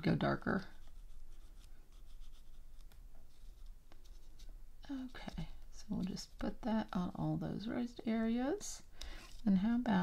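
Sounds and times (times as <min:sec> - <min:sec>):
pencil scribbling on paper: 0:00.7 - 0:03.7.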